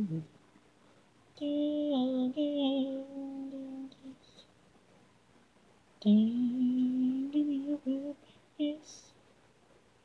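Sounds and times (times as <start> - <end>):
person singing wordless notes: 1.4 - 4.4, 6.0 - 9.1.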